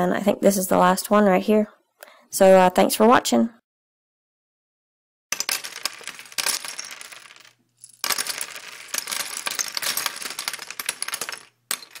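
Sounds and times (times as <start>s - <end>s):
small hard objects clinking: 5.3s - 12.0s.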